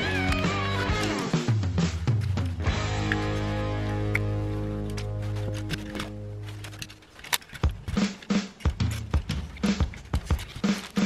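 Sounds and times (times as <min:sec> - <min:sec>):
steady drum beat: 0:00.0 - 0:03.8, 0:07.6 - 0:11.0.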